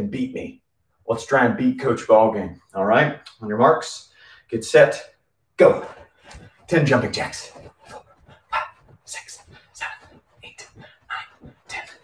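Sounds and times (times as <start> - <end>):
man huffing and grunting: 7.7 - 12.0.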